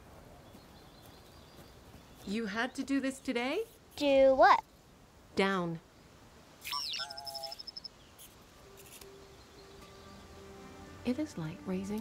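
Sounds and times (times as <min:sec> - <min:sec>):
soft sustained music notes: 0:08.5 - 0:12.0.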